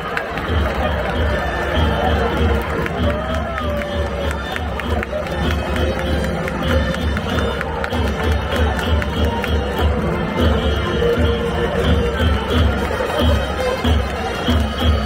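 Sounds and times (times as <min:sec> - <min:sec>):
rhythmic clapping: 0:00.0 - 0:15.0
stadium crowd cheering: 0:00.0 - 0:15.0
steady drum beats: 0:00.0 - 0:15.0.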